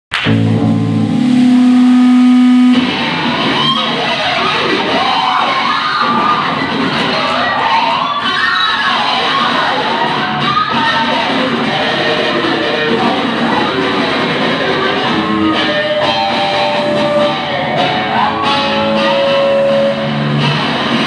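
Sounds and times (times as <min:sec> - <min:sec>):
loud held guitar note: 0:00.1 - 0:03.4
distorted rock band playing: 0:00.1 - 0:21.0.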